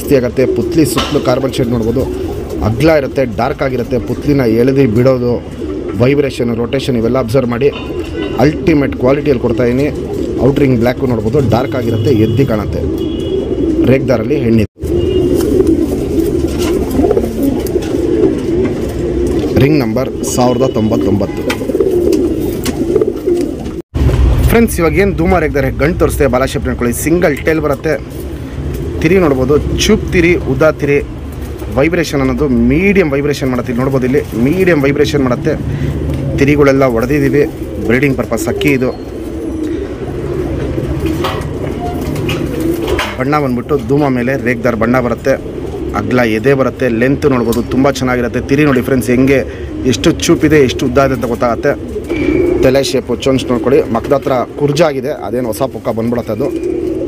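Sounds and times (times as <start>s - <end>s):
man speaking: 0.0s - 13.0s, 13.8s - 14.8s, 19.5s - 21.5s, 24.4s - 28.1s, 29.0s - 31.1s, 31.7s - 39.0s, 43.2s - 51.8s, 52.5s - 56.6s
pigeons cooing: 0.0s - 23.8s, 24.9s - 57.0s.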